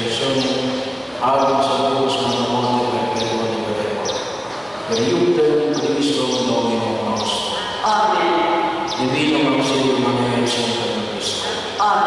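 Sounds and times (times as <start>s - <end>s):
voice echoing in church: 0.0s - 12.0s.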